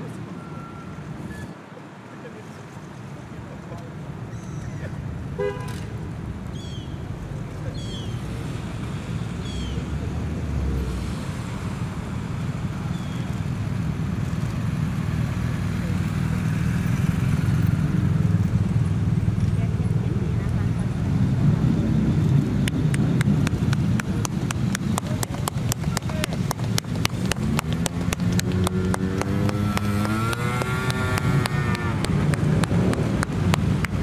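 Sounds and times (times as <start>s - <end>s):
crowd voices: 0.0s - 34.0s
motorcycles driving slowly past: 2.2s - 34.0s.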